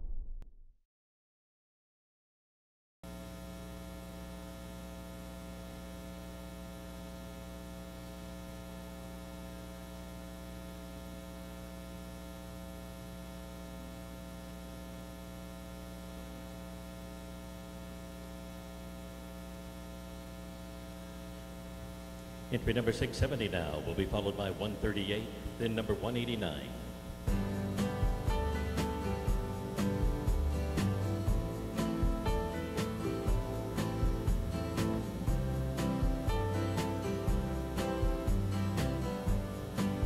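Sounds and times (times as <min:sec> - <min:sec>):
electrical mains hum: 0:03.1 - 0:40.0.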